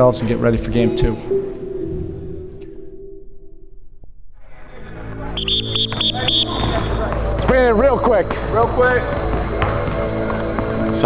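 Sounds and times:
sneakers squeaking: 0:04.6 - 0:11.0
basketballs bouncing: 0:05.0 - 0:11.0.

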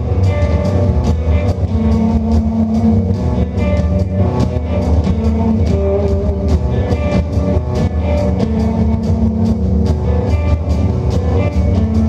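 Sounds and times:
drum kit: 0:00.0 - 0:12.0
electric guitar: 0:00.0 - 0:12.0.

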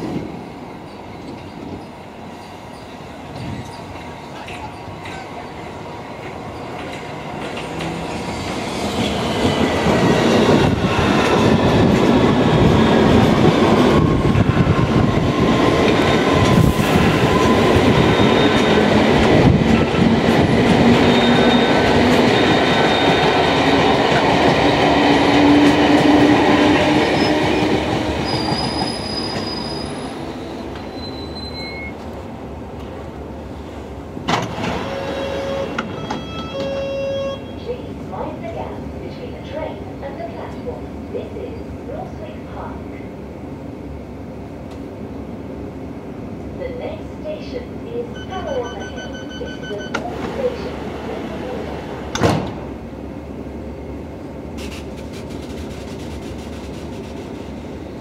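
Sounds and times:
train wheels rumbling on rails: 0:00.0 - 0:37.0, 0:53.9 - 0:58.0
high train whine: 0:00.0 - 0:58.0.

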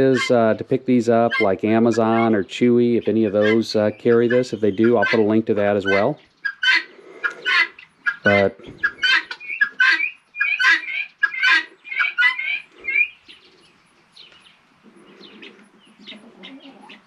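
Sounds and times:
poultry chirping: 0:00.0 - 0:17.0.

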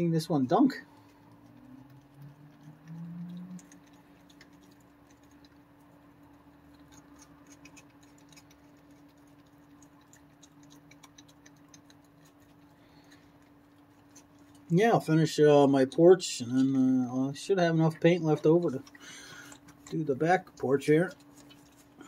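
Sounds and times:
low electrical hum: 0:00.0 - 0:22.0.

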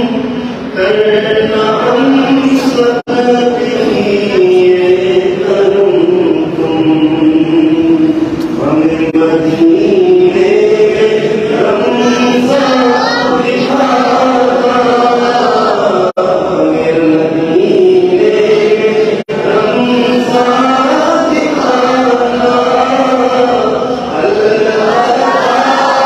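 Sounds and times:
man chanting into a microphone: 0:00.0 - 0:26.0.

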